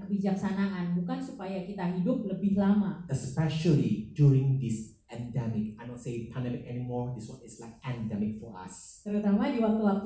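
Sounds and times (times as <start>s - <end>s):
man speaking: 3.1s - 9.0s.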